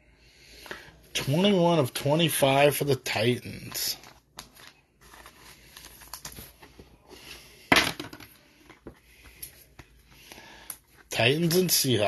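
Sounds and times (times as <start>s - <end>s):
plastic sleeve rustling and scraping: 3.6s - 7.6s.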